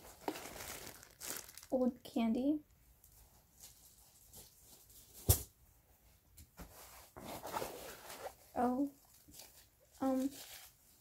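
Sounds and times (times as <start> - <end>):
rummaging in a backpack: 6.8 - 8.6.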